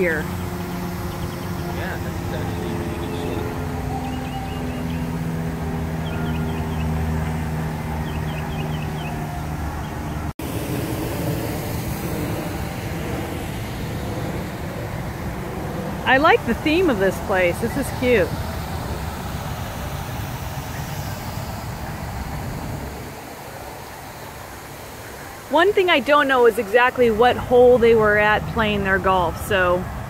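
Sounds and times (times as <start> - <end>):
engine drone: 0.0 - 30.0
road traffic hum: 0.0 - 30.0.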